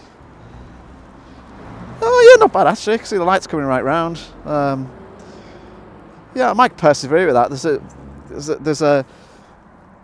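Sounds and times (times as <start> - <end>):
low rumble of car traffic: 0.0 - 10.0.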